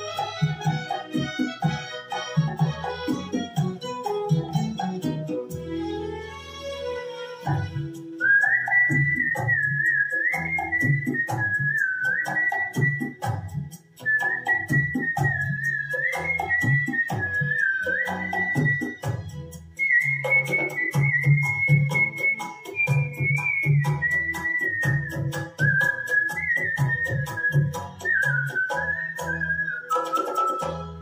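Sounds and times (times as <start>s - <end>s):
karaoke backing track: 0.0s - 31.0s
man whistling a melody: 7.6s - 31.0s.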